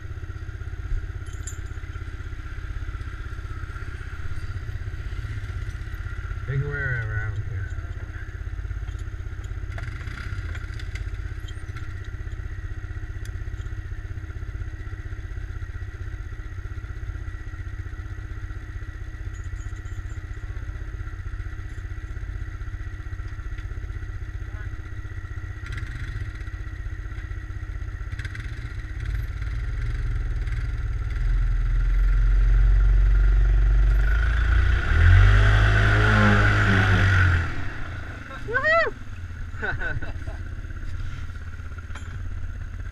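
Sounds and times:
atv engines idling and revving: 0.0s - 42.9s.

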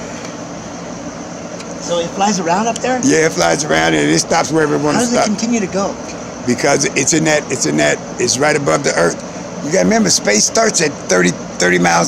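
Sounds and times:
faint low hum: 0.0s - 12.0s
even hiss: 1.8s - 12.0s
man speaking: 1.8s - 12.0s.

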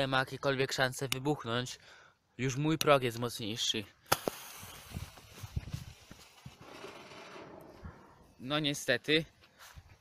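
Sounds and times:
firecracker fizzling hiss: 4.1s - 6.6s
soft footsteps: 9.3s - 10.0s.

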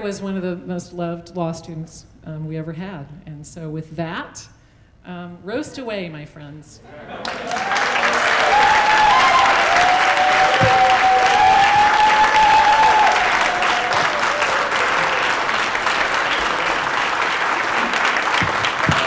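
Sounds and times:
people applauding: 7.1s - 19.0s.

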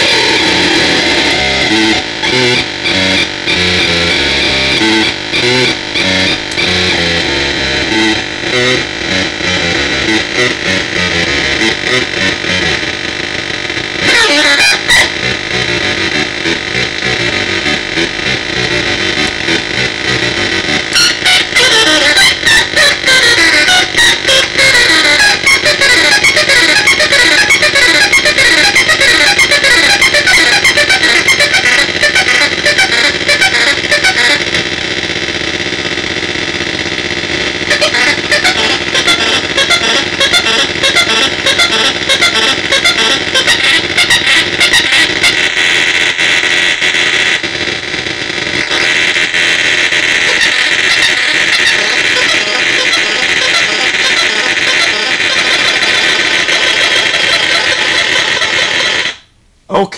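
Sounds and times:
harsh buzzing synth drone: 0.0s - 59.3s.

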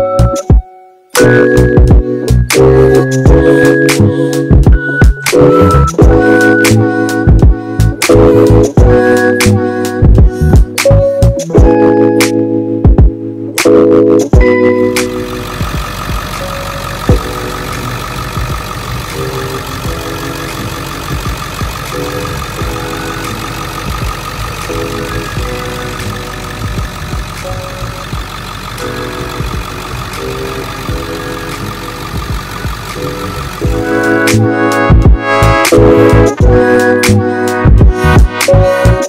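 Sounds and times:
diesel engine idling: 2.8s - 10.5s, 14.3s - 38.9s.

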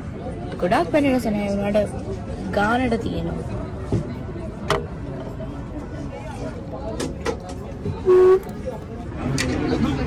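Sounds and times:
street traffic hum: 0.0s - 10.0s
car horn toot: 8.1s - 8.5s.

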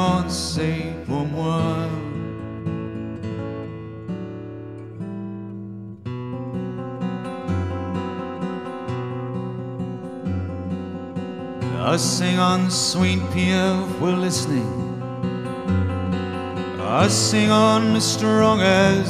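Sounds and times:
person singing: 0.0s - 2.5s, 11.6s - 15.2s, 16.5s - 19.0s
acoustic guitar: 0.0s - 19.0s.

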